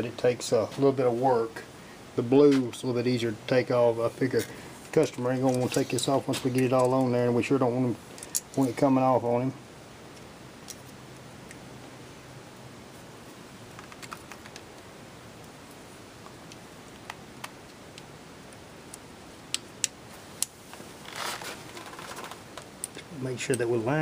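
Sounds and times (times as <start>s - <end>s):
faint steady hiss: 0.0s - 24.0s
scraping rustle: 4.2s - 7.2s, 20.6s - 22.6s.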